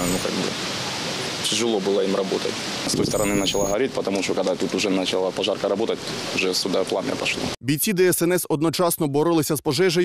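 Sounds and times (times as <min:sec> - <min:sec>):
outdoor street noise: 0:00.0 - 0:07.7
man's voice: 0:02.9 - 0:04.3, 0:06.8 - 0:10.0.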